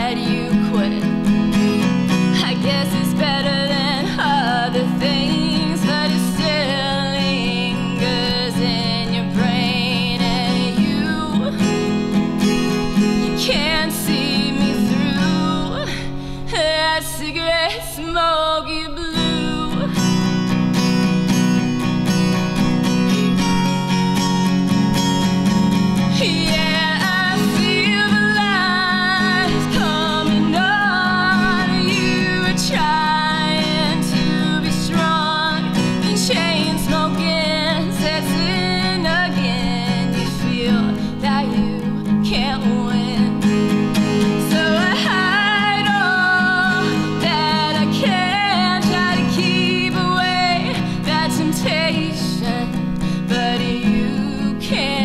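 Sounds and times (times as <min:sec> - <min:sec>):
woman singing: 0:00.0 - 0:21.4, 0:25.7 - 0:55.0
strummed acoustic guitar: 0:00.0 - 0:55.0.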